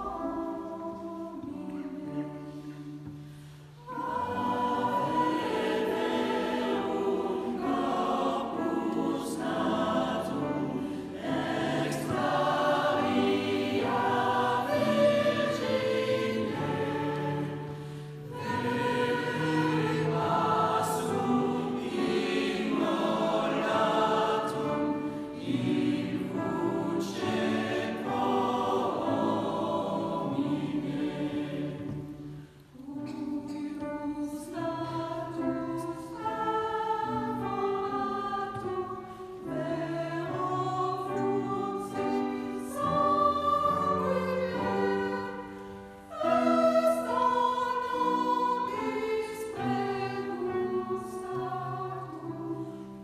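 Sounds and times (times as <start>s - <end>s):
mixed choir singing: 0.0s - 53.0s.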